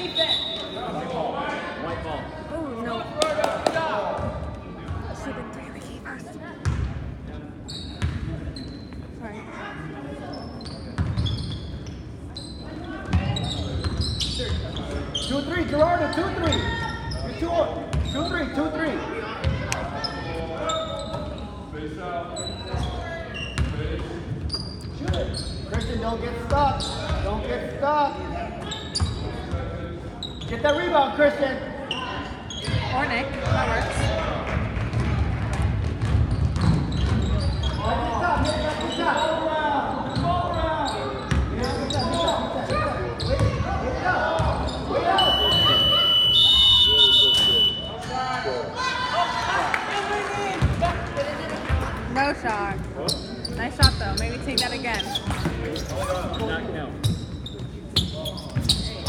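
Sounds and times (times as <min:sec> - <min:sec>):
basketball bouncing on wooden floor: 0:34.9 - 0:37.5.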